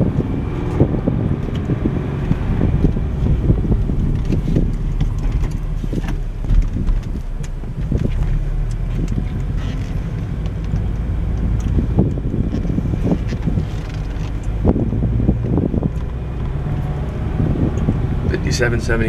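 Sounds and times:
car driving rumble from inside: 0.0 - 19.0.

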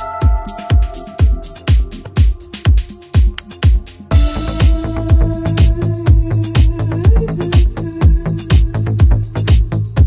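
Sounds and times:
held synth chord: 0.0 - 3.2, 4.0 - 6.4
hi-hats: 0.0 - 10.0
kick drum: 0.0 - 10.0.

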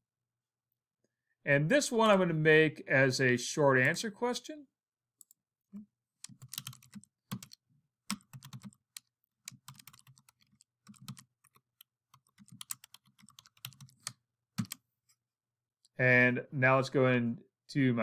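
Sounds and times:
typing on computer keyboard: 6.2 - 14.8.

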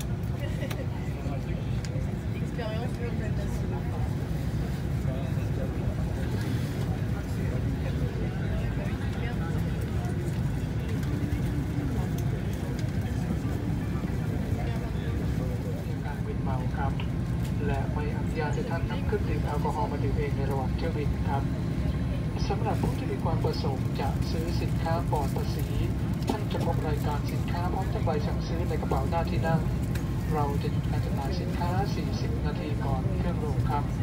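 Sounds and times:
airliner cabin rumble: 0.0 - 34.0
passengers talking: 0.0 - 34.0.

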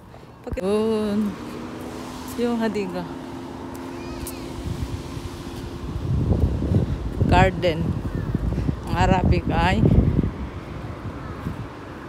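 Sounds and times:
wind and handling on microphone: 4.1 - 12.0.

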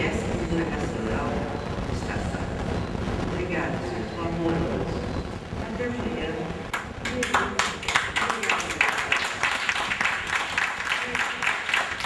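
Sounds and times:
small group applauding: 6.7 - 12.0.

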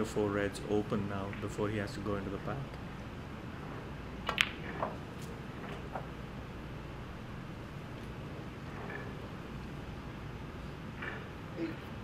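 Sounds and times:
cue ball clicking against ball: 3.6 - 6.2.

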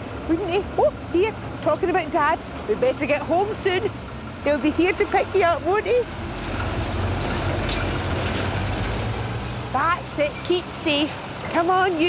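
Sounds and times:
lorry diesel engine rumble: 0.0 - 12.0.

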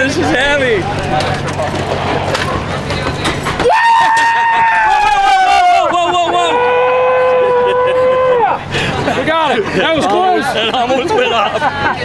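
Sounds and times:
men yelling in celebration: 3.6 - 8.6.

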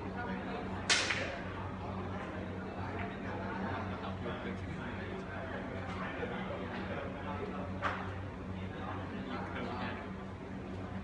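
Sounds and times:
steady low hum: 0.0 - 11.0
sharp crack with ringing tail: 0.9 - 1.5.

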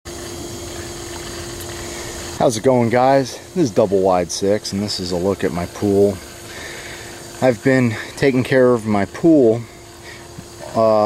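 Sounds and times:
constant hum: 0.1 - 11.0
water rushing and pump noise: 0.1 - 11.0.

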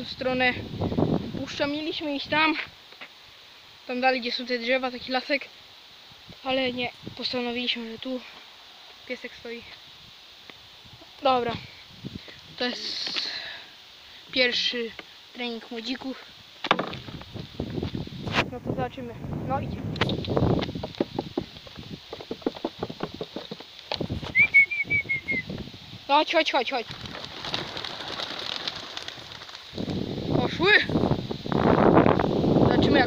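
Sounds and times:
man speaking: 14.3 - 14.9
pigeon wings flapping: 20.0 - 24.9, 26.6 - 30.0.

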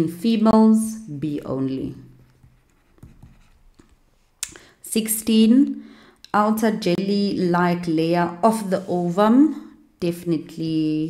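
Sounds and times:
stylus tapping on tablet screen: 2.3 - 4.0.

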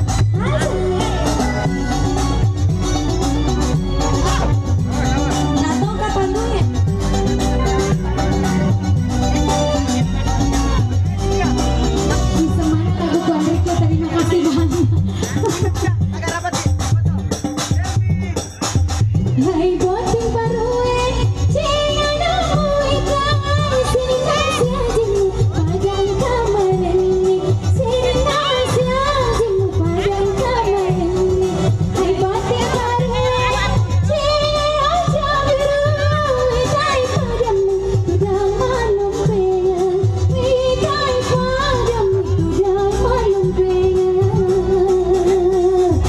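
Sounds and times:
women singing into microphones: 0.0 - 10.1, 11.9 - 15.7, 19.2 - 46.0
electronic keyboard backing: 0.0 - 46.0.

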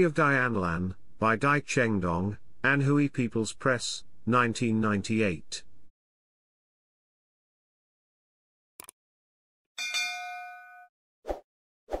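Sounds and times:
notification bell chime: 9.8 - 10.9.

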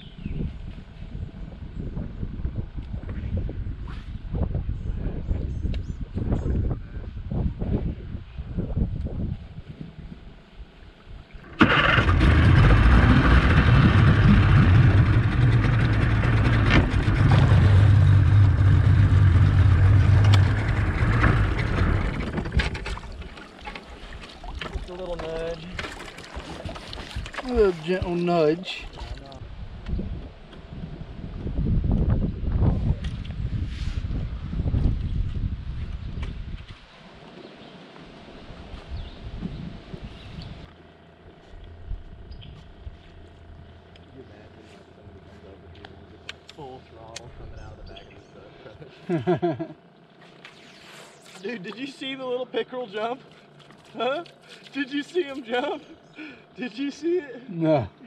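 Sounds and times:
outboard motor running: 11.3 - 29.4, 39.2 - 58.0.

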